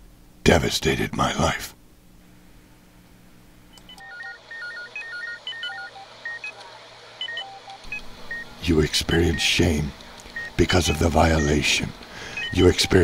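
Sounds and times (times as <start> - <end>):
faint low hum: 0.0 - 13.0
beeping tone melody: 4.0 - 6.6, 7.2 - 8.5, 9.1 - 9.6, 10.4 - 13.0.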